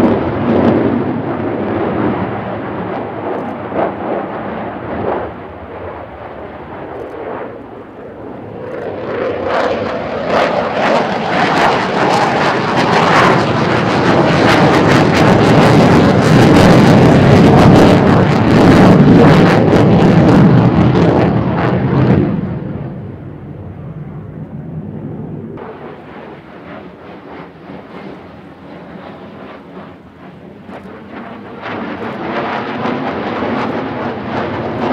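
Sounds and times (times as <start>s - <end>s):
jet engines in afterburner: 0.0s - 34.9s.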